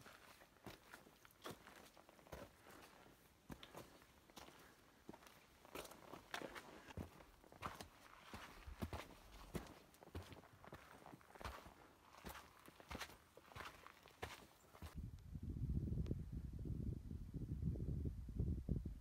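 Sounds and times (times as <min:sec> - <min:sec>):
footsteps on rocky trail: 0:00.0 - 0:15.0.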